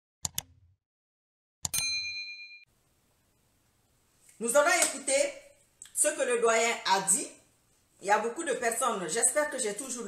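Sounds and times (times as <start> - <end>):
notification bell chime: 1.7 - 2.7.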